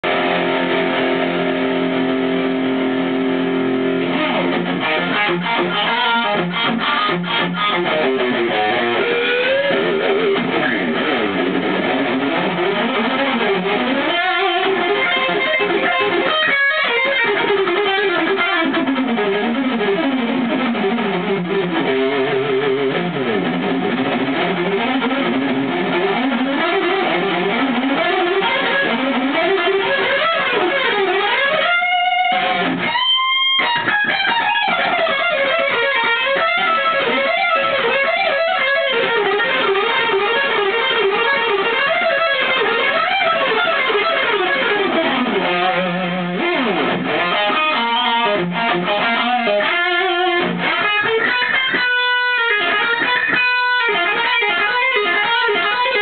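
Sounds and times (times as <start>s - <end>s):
electric guitar chord ringing: 0.0s - 56.0s.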